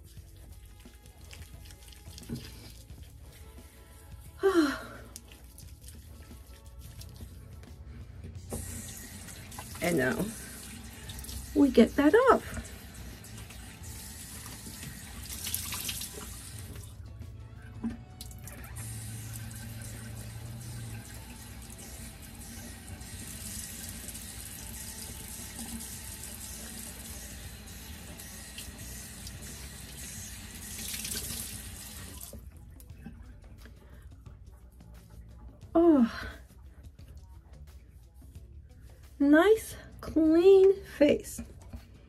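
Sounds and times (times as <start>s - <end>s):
washcloth rinsed splashing: 0.0s - 3.7s, 4.6s - 17.0s, 18.2s - 32.4s
tap water running into sink: 1.2s - 3.0s, 8.4s - 17.0s, 17.8s - 32.4s.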